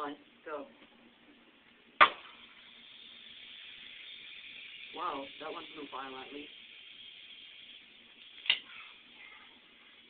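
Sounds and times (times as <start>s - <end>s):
steady venting hiss: 0.0s - 10.0s
capacitor popping: 2.0s - 9.0s.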